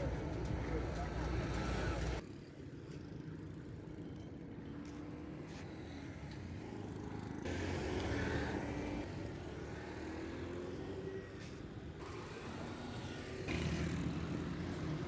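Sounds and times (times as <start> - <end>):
vehicle engines passing: 0.0 - 2.4, 3.0 - 15.0.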